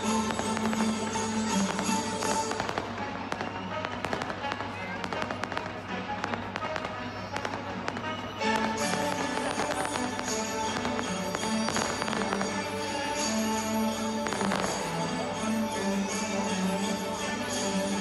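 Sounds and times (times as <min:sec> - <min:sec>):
fireworks bursting and crackling: 0:00.0 - 0:18.0.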